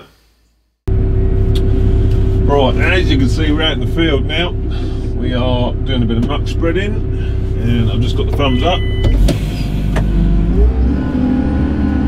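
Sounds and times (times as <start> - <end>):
tractor diesel engine revving: 0.9 - 12.0.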